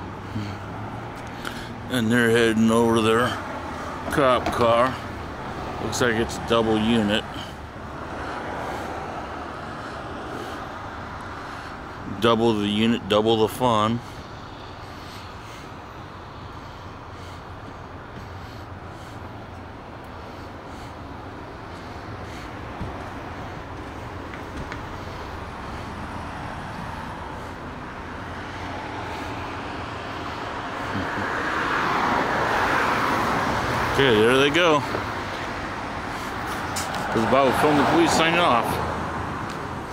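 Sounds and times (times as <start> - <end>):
vehicle passing close: 0.0 - 12.0, 13.7 - 39.9
street traffic noise: 0.0 - 39.9.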